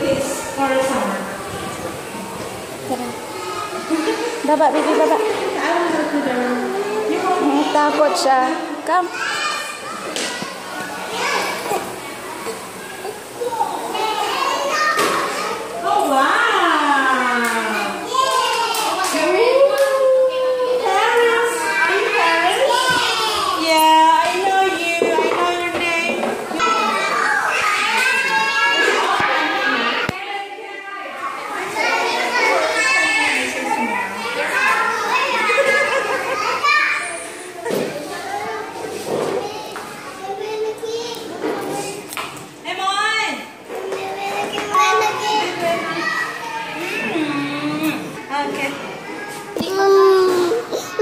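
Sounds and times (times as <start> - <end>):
young children chattering: 0.0 - 51.0.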